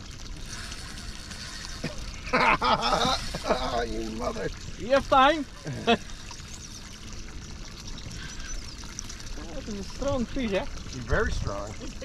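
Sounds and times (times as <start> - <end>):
water lapping against boat hull: 0.0 - 12.0.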